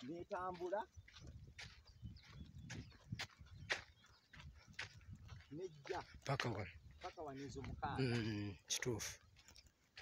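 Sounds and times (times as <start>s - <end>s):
footsteps crunching on dry earth: 0.0s - 10.0s.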